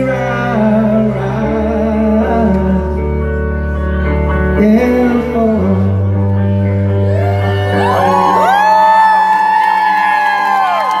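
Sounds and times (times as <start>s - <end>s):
audience whooping and cheering: 7.0s - 11.0s
people clapping: 8.2s - 11.0s.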